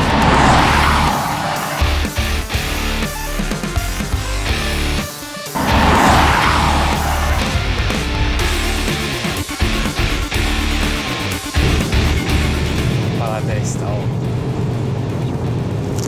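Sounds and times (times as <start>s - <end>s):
rushing whooshes: 0.0s - 3.0s, 5.6s - 13.6s
hard rock music with electric guitar: 0.1s - 14.0s.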